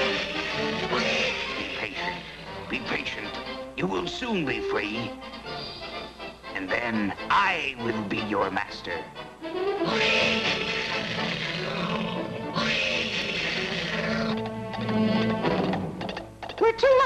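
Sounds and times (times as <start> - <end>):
dramatic orchestral music: 0.0 - 16.0.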